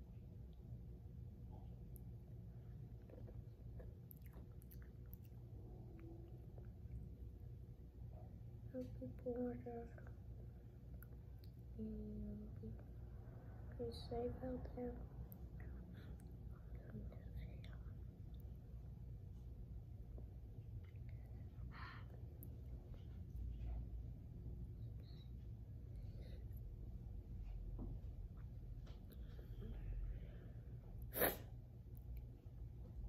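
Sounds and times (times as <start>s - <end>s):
low room hum: 0.0s - 33.0s
person whispering softly: 8.1s - 10.3s, 11.8s - 13.0s, 13.6s - 18.4s, 20.8s - 23.8s
child sneezing: 31.1s - 31.5s.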